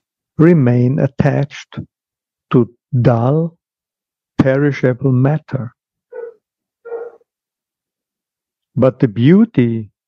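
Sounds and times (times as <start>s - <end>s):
speech: 0.4s - 1.9s, 2.5s - 3.6s, 4.4s - 5.8s, 8.8s - 10.0s
high-pitched animal calls: 6.1s - 7.2s.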